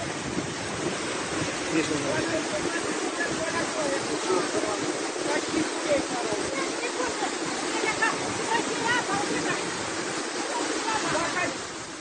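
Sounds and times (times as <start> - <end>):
floodwater rushing over ground: 0.0 - 12.0
faint voices: 1.7 - 11.7.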